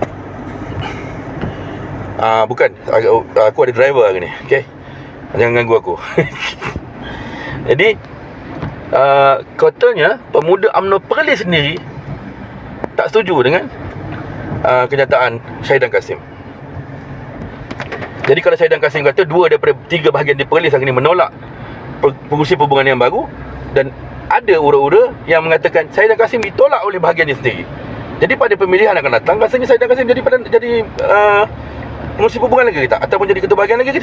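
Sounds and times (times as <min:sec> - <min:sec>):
car road and engine noise: 0:00.0 - 0:34.0
low rumble of passing traffic: 0:00.0 - 0:34.0.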